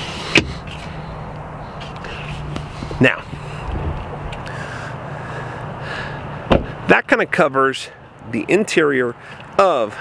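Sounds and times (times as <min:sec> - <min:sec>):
outdoor background noise: 0:00.0 - 0:10.0
low hum: 0:00.6 - 0:06.8.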